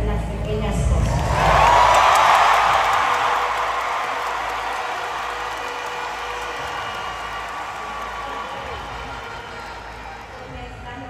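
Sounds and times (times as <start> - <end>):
crowd applauding and cheering: 1.0 - 11.0.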